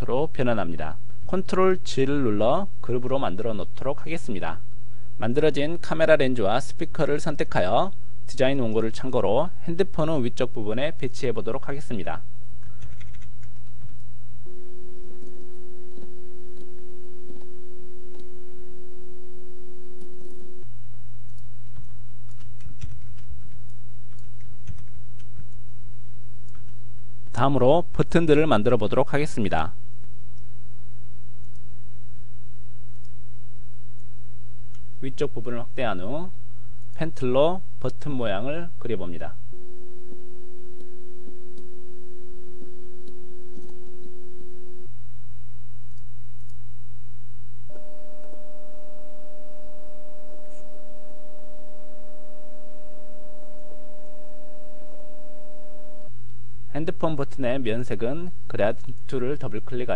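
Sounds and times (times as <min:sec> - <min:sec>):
steady hum: 0:00.0 - 0:59.9
sustained electronic tones: 0:47.2 - 0:59.9.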